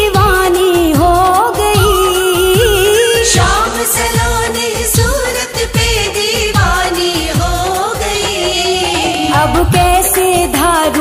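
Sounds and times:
person singing devotional song: 0.0s - 11.0s
deep sliding drum strokes: 6.2s - 10.6s.

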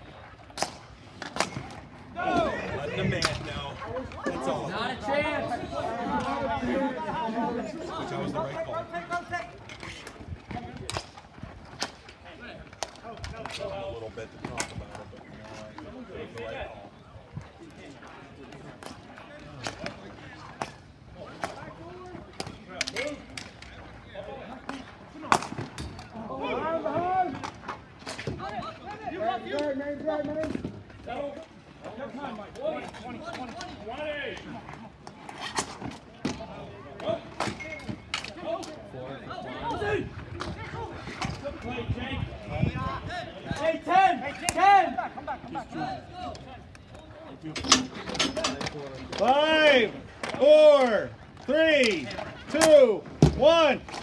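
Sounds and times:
voices calling out: 0.0s - 54.0s
hockey sticks clacking: 0.3s - 2.6s, 3.2s - 4.5s, 8.9s - 16.5s, 18.5s - 23.9s, 32.0s - 38.8s, 46.2s - 54.0s.

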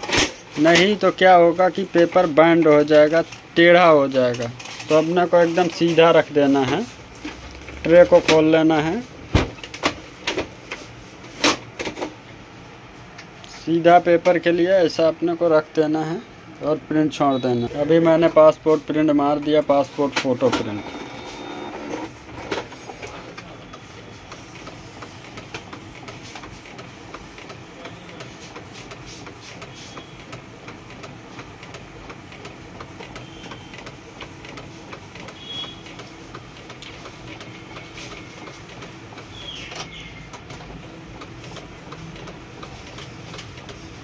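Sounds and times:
printer carriage shuttling: 0.0s - 12.2s, 19.4s - 43.9s
printer motor hum: 0.6s - 44.0s
high printer motor whines: 20.4s - 44.0s.

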